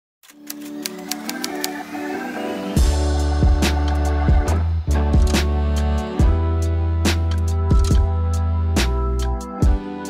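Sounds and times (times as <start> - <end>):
typewriter key clicks: 0.2 - 1.8
soft intro music: 0.3 - 10.0.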